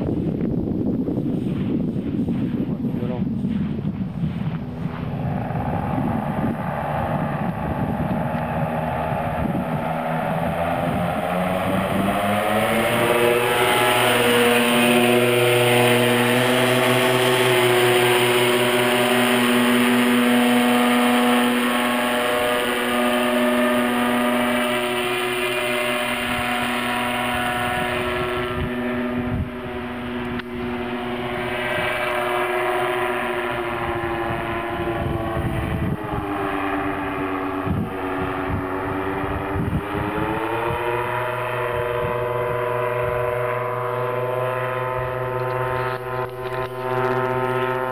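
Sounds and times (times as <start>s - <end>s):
paramotor engine and propeller: 0.0s - 47.9s.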